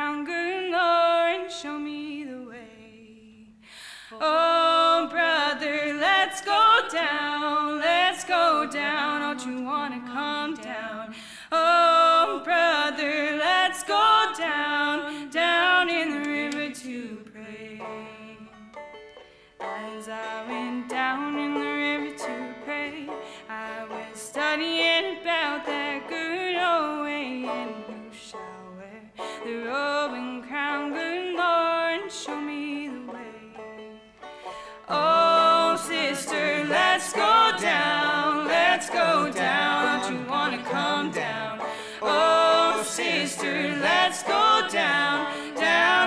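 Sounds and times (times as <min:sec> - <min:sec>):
banjo picking: 0:00.0 - 0:03.5, 0:04.2 - 0:46.0
sliding melody line: 0:34.8 - 0:46.0.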